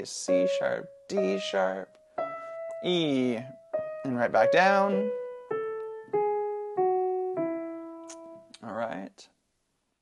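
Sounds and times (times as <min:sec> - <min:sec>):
digital piano single notes: 0:00.0 - 0:08.6.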